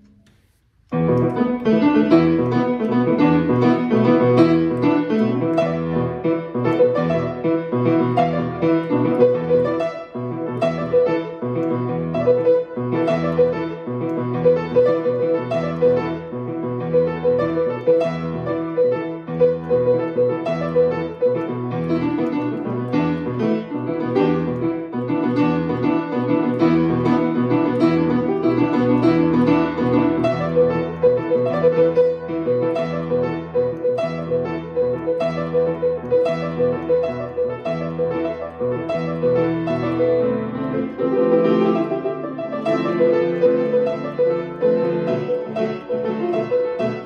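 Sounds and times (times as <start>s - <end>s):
grand piano playing: 0.0s - 47.0s.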